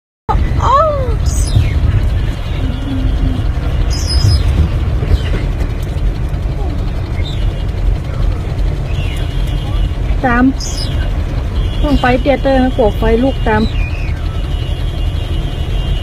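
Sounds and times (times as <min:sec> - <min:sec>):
vehicle rumble from inside cab: 0:00.3 - 0:16.0.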